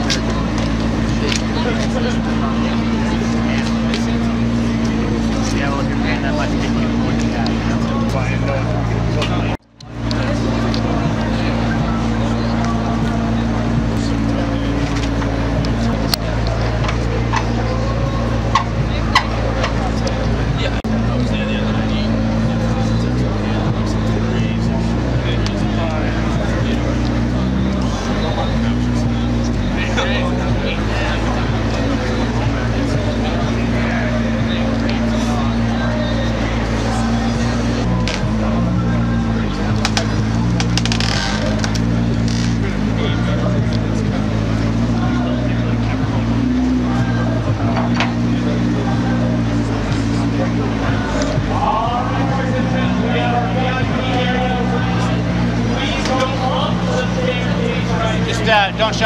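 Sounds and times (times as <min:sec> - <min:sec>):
car engine idling: 0:00.0 - 0:59.0
crowd chatter: 0:00.0 - 0:59.0.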